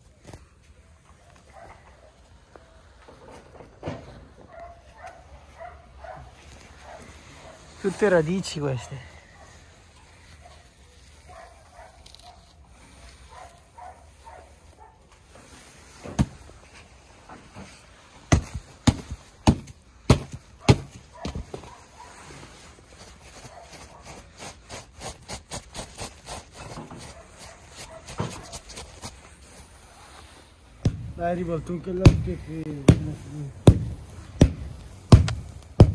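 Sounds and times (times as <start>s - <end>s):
hammer striking artificial turf: 16.0s - 16.5s, 18.3s - 21.6s, 30.8s - 35.9s.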